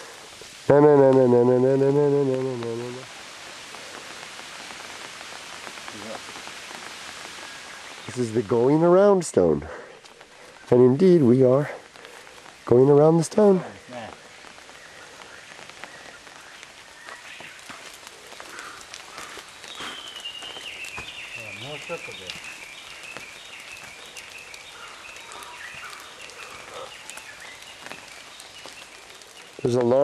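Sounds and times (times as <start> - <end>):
outdoor crackling patter: 0.0 - 30.0.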